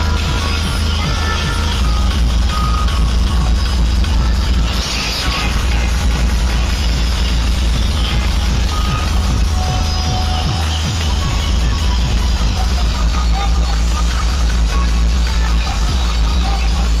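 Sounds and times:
loud dance music: 0.0s - 17.0s.

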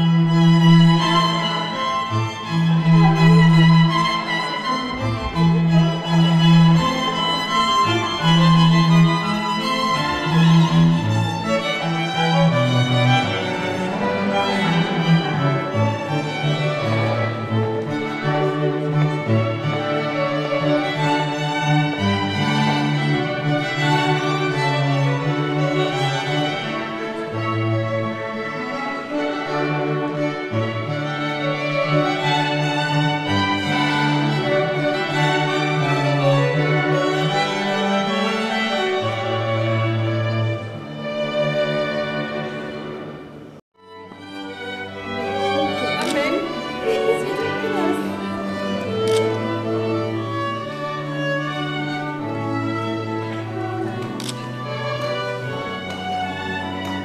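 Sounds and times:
held low string notes: 0.0s - 57.0s
violin melody: 0.0s - 57.0s.

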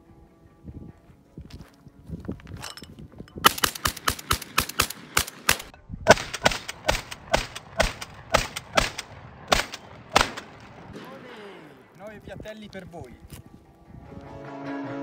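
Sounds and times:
shotgun shots: 3.4s - 11.6s.

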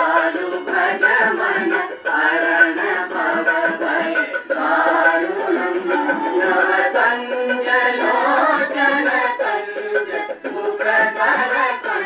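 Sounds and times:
gramophone playing devotional singing: 0.0s - 12.0s.

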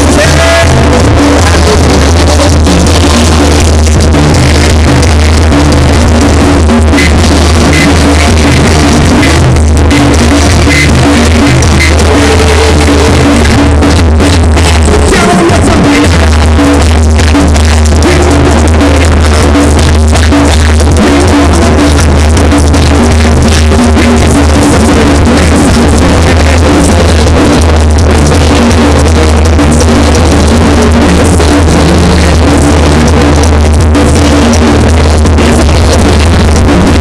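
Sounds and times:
heavy bass and drums: 0.0s - 37.0s.

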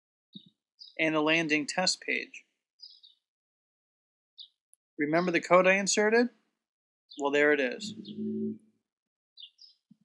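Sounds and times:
man's low humming voice: 7.8s - 8.6s.

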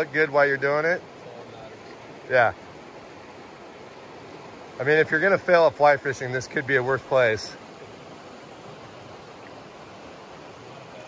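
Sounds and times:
man talking: 0.0s - 2.6s, 4.8s - 7.6s
river rushing over rapids: 0.0s - 11.0s.

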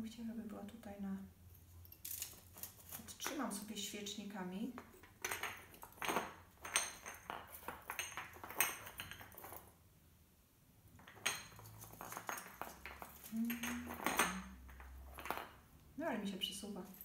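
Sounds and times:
baubles clinking on metal: 11.1s - 15.6s.

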